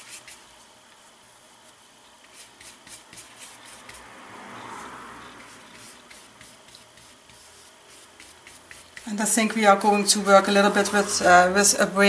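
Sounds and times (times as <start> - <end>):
paintbrush strokes on paper: 0.0 - 11.8.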